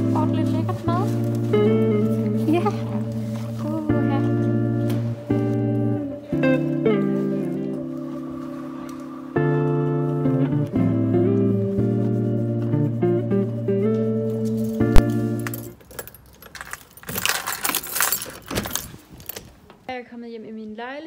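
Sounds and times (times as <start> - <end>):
background music sustained notes: 0.0 - 16.1
keys jangling: 14.5 - 19.6.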